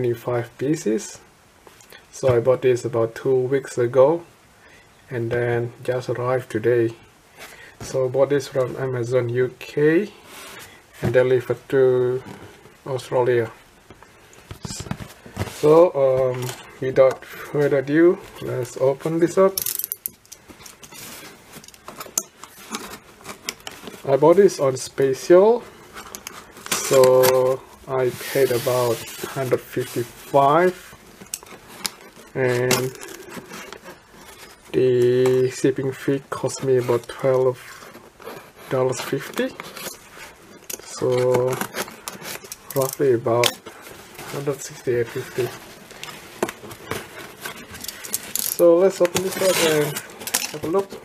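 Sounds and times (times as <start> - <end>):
cardboard box rustling: 14.4 - 17.6, 40.9 - 51.0.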